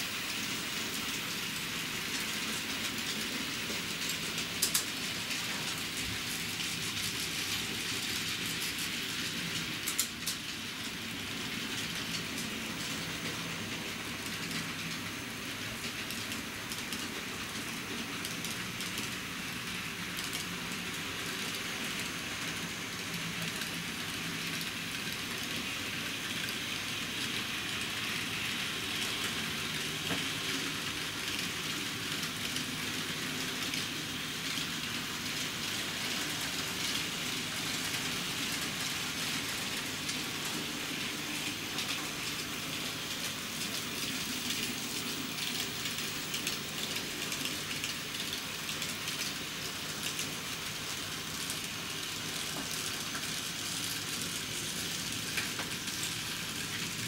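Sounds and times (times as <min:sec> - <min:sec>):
model train wheels on rails: 0:00.0 - 0:57.0.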